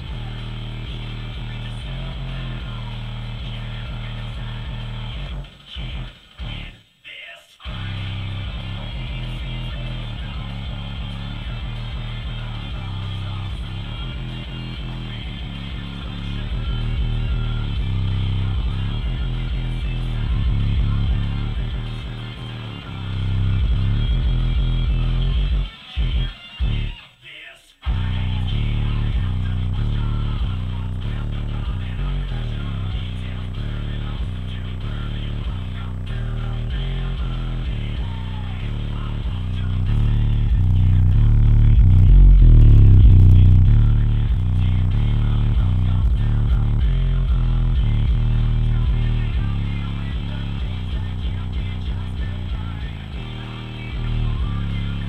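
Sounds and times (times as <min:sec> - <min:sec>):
bass-heavy music through subwoofers: 0:00.0 - 0:06.9, 0:07.6 - 0:27.1, 0:27.8 - 0:55.0.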